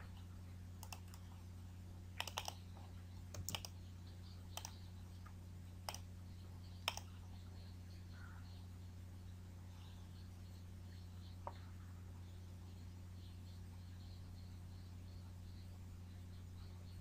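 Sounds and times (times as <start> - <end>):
low electrical hum: 0.0 - 17.0
mouse clicks: 0.8 - 1.3, 2.2 - 2.6, 3.3 - 3.8, 4.5 - 4.8, 5.8 - 6.1, 6.8 - 7.1
keyboard keystrokes: 2.2 - 2.6, 3.3 - 3.7.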